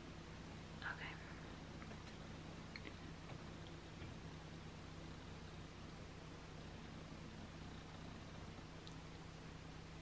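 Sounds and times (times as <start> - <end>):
low steady hum: 0.0 - 10.0
person whispering faintly: 0.8 - 1.4.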